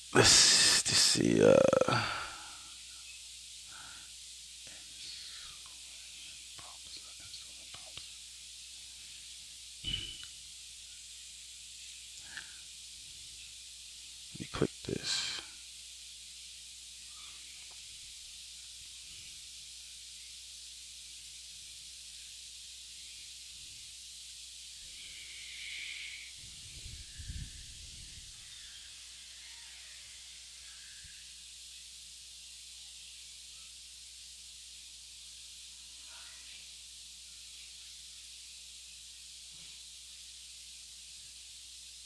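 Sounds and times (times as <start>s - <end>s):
phone microphone hiss: 0.0s - 42.0s.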